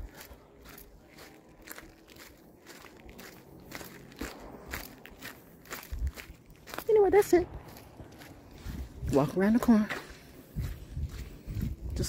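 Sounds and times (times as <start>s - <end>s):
footsteps on sandy dirt trail: 0.0s - 12.0s.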